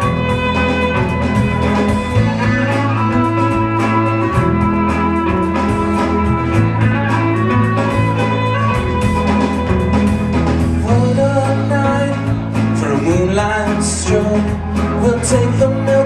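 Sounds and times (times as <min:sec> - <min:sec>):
live band playing instrumental: 0:00.0 - 0:16.0.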